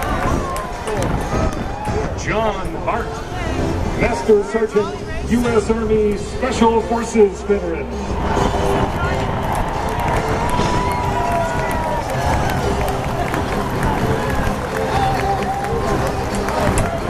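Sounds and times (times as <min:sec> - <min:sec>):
music over sound system: 0:00.0 - 0:17.0
stadium crowd cheering and shouting: 0:00.0 - 0:17.0.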